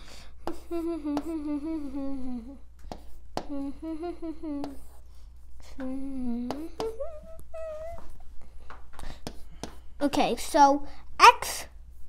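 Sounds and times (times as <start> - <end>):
child humming: 0.0 - 2.7, 3.4 - 5.0, 5.6 - 8.2.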